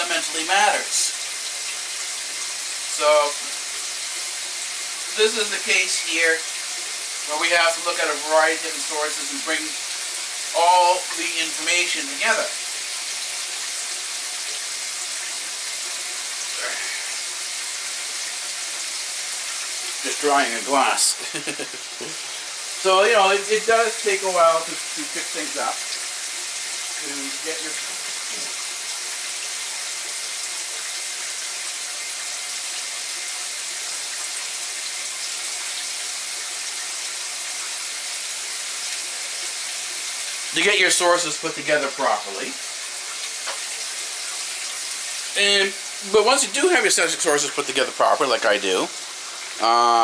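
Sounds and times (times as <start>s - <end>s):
tap water running into sink: 0.0s - 50.0s.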